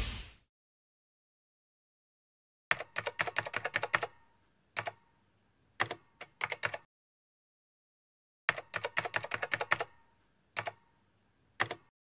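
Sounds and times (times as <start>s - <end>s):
keyboard key clicks: 11.6s - 11.9s.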